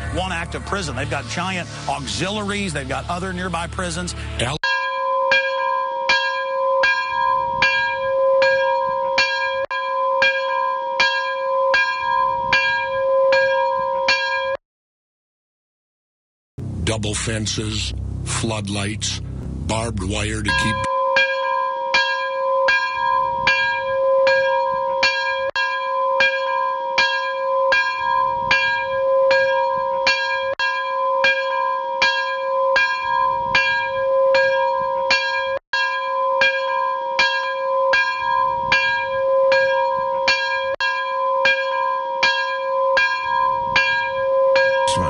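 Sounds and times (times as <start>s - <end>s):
repeating bell-like tone: 20.0s - 45.0s.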